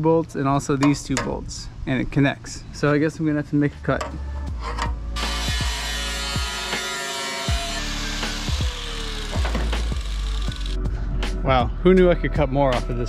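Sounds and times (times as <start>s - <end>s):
background music: 3.4s - 13.0s
power tool cutting sheet metal: 5.2s - 10.8s.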